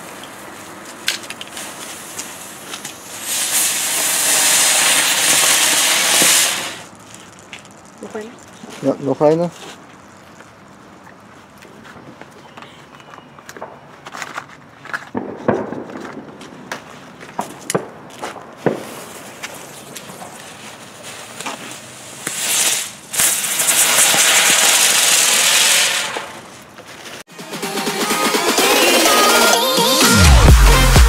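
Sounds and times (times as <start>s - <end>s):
firework spinner hissing: 0.0s - 8.5s, 18.6s - 30.2s
firework crackles and pops: 0.0s - 8.6s, 14.9s - 27.3s.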